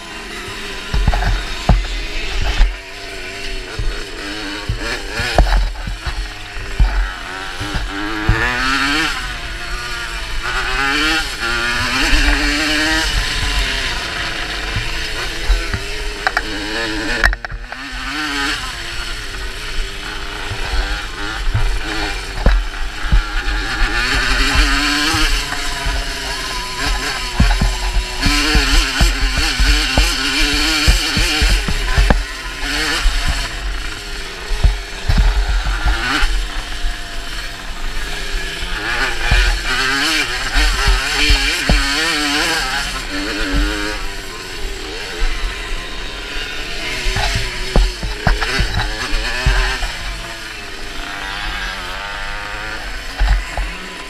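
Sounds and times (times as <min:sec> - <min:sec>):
rattles and knocks over bumps: 0:00.0 - 0:17.9, 0:18.7 - 0:54.0
moped engine revving: 0:00.0 - 0:54.0.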